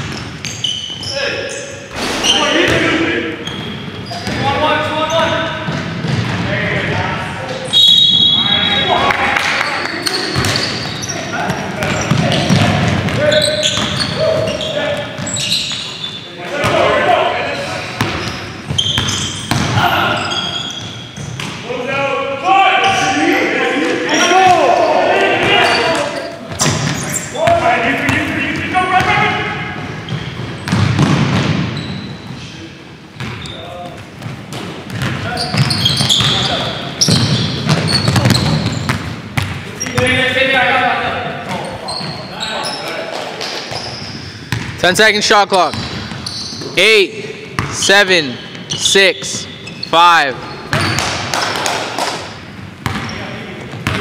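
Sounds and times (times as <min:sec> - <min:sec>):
basketball bouncing on hardwood: 0:05.7 - 0:06.5, 0:18.0 - 0:19.8, 0:30.1 - 0:31.6, 0:34.2 - 0:39.6
players shouting: 0:16.3 - 0:18.3, 0:19.4 - 0:20.8, 0:21.8 - 0:29.8.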